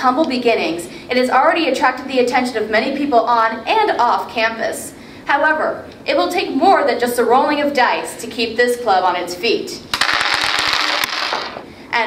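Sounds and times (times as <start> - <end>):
dice clattering on tabletop: 9.9 - 11.7.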